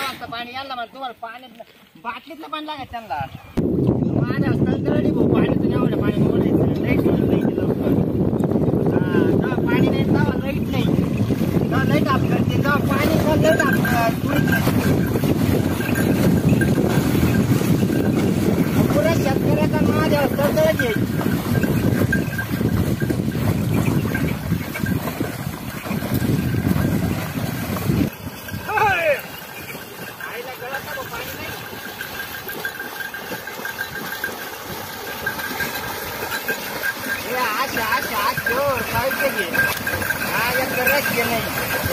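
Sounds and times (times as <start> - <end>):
wind rumble on microphone: 3.4 - 30.2, 38.1 - 41.9
water sloshing and splashing: 9.6 - 41.9.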